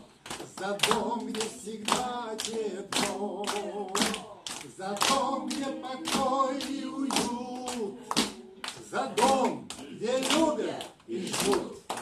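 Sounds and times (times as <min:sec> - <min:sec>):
rhythmic hand clapping: 0:00.0 - 0:12.0.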